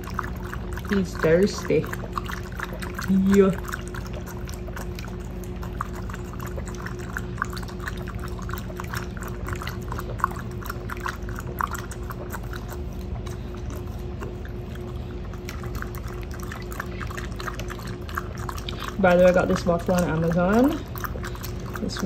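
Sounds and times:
dog lapping water: 0:00.0 - 0:22.0.

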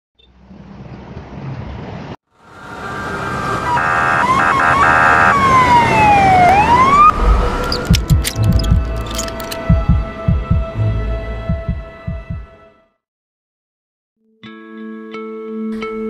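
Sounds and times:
emergency vehicle siren: 0:02.4 - 0:08.0
rush of noise: 0:02.5 - 0:09.1
low rumble: 0:07.0 - 0:12.5
low thumps: 0:07.0 - 0:12.6.

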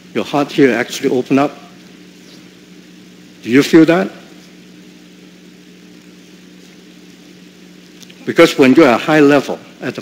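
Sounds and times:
low hum with faint hiss: 0:00.0 - 0:10.0.

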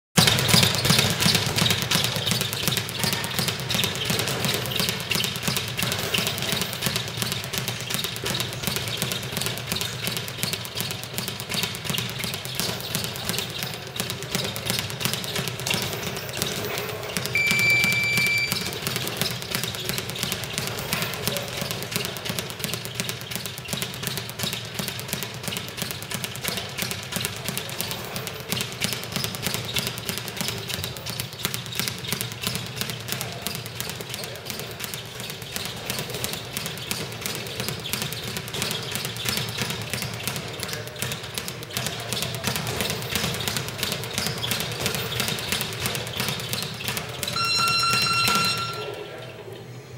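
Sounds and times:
speed bag drumming: 0:00.2 - 0:48.9
high beep: 0:17.4 - 0:18.7, 0:47.4 - 0:49.0.

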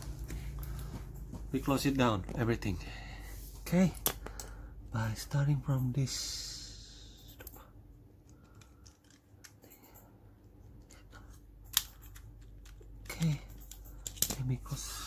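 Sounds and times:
plastic parts rattling and clicking: 0:08.2 - 0:09.9, 0:11.6 - 0:14.8.

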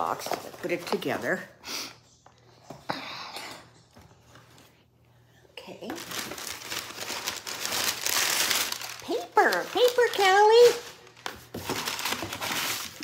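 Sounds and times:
packing paper rustling and crinkling: 0:05.8 - 0:13.0.

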